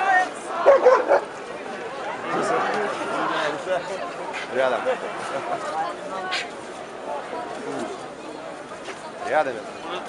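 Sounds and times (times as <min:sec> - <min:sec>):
crowd chatter: 0:00.0 - 0:10.0
dog barking: 0:00.6 - 0:01.3.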